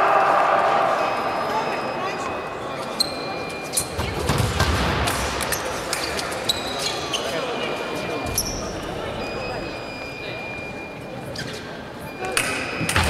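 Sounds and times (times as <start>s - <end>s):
sports shoes squeaking: 2.8s - 4.6s, 5.5s - 12.4s.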